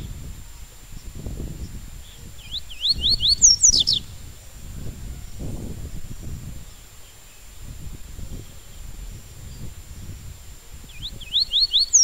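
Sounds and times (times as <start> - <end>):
bird singing whistled notes: 0.9 - 4.2, 4.8 - 12.0.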